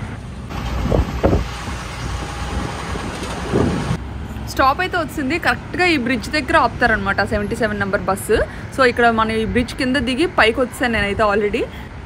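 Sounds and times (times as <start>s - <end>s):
city road traffic rumble: 0.0s - 12.0s.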